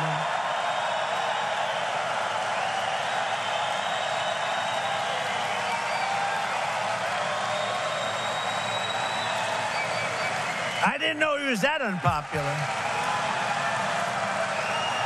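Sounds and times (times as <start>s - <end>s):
crowd cheering and applauding: 0.0s - 15.0s
faint whistles: 2.6s - 6.2s, 7.3s - 10.9s, 14.6s - 15.0s.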